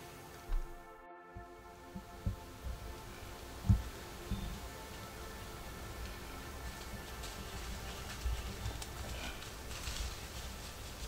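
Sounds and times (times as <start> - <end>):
low wind rumble: 0.0 - 11.0
rustling in dry leaves: 1.8 - 11.0
bird chirp: 2.0 - 10.9.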